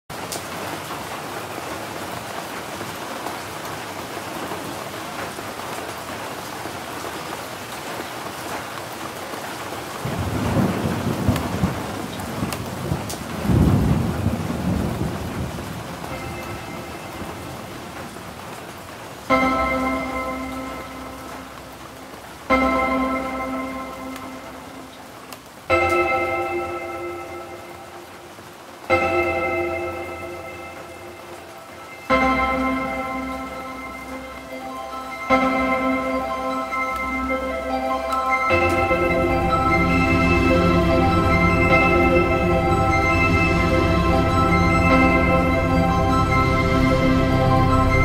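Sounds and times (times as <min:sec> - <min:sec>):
steady rain: 0:00.1 - 0:48.0
thunder rolling: 0:10.0 - 0:18.6
pitched musical chord: 0:16.0 - 0:17.8, 0:19.3 - 0:24.9, 0:28.9 - 0:48.0
melodic dubstep music: 0:32.1 - 0:48.0.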